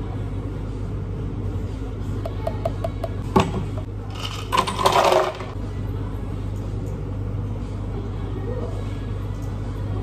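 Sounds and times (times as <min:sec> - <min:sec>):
low steady hum: 0:00.0 - 0:10.0
ice cubes rattling into blender jug: 0:04.2 - 0:05.5.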